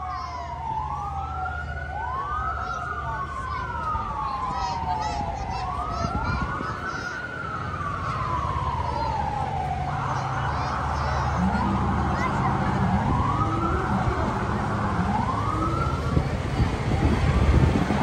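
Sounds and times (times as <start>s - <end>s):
fire engine siren wailing: 0.0s - 18.0s
truck engine rumble: 0.0s - 18.0s.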